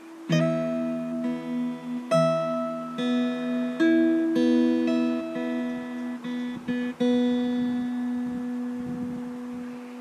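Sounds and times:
acoustic guitar note ringing: 0.0 - 10.0.

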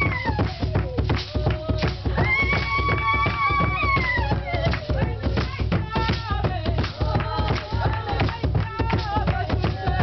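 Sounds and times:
drum beaten in steady rhythm: 0.0 - 10.0
people singing: 0.0 - 10.0.

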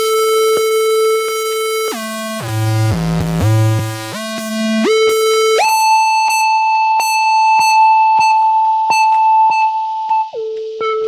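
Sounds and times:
buzzy synthesizer note: 2.3 - 7.2.

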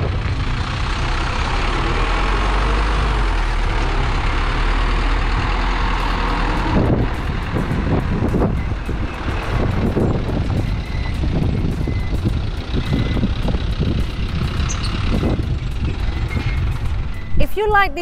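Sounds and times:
truck driving past: 0.0 - 17.4.

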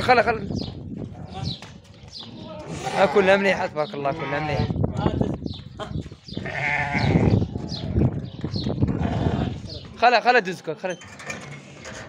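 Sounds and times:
sheep bleating: 2.6 - 3.5, 6.4 - 8.0, 8.9 - 9.7.

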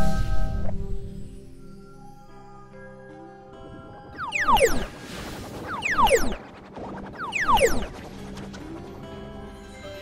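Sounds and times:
electronic downward tone sweep: 4.2 - 4.9, 5.7 - 6.4, 7.1 - 7.9.

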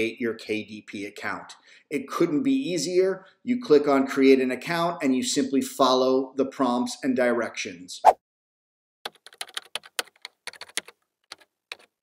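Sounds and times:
keyboard typing: 9.1 - 12.0.

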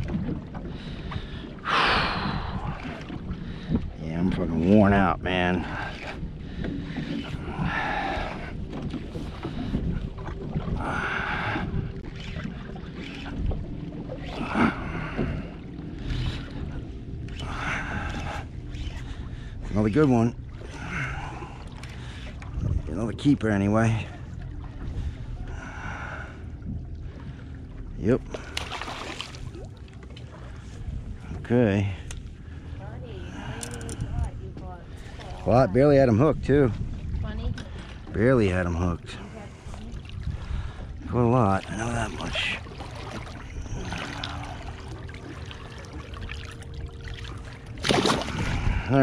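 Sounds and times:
low rumble: 0.0 - 49.0
water sloshing against boat hull: 0.0 - 49.0
wind: 0.0 - 49.0
faint clicks: 32.0 - 32.3.

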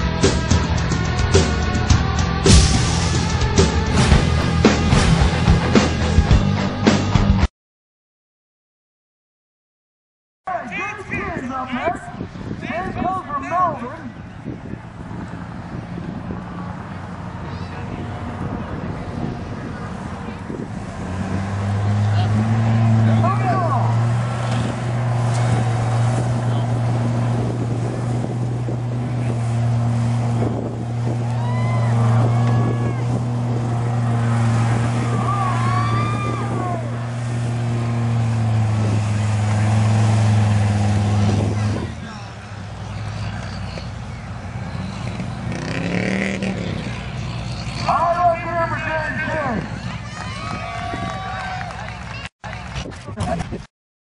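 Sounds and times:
truck churning through mud: 0.0 - 7.4, 14.7 - 50.7
truck engine at high revs: 0.0 - 7.5, 14.1 - 53.7.

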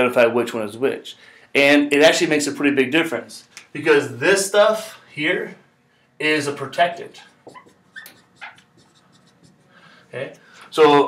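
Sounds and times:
marker squeaking on whiteboard: 6.9 - 9.8.

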